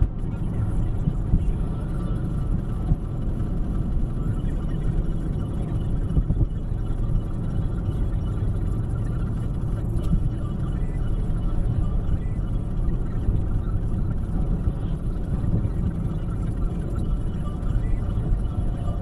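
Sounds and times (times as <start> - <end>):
car road and engine rumble: 0.0 - 19.0.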